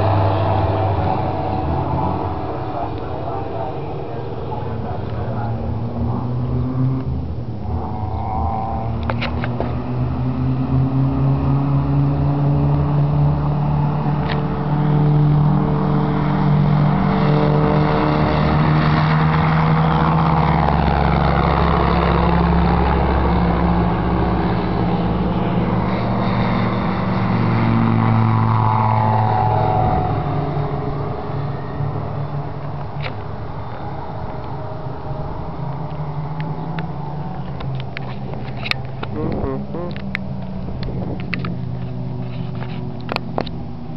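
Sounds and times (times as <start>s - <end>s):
propeller aircraft flying past: 0.0s - 43.9s.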